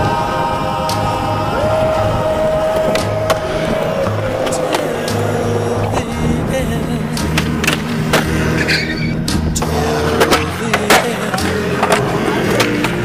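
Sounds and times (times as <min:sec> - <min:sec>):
skateboard clacks: 0:00.0 - 0:06.3, 0:07.0 - 0:13.0
skateboard wheels rolling on concrete: 0:00.0 - 0:13.0
song with pulsing bass beat: 0:00.0 - 0:13.0.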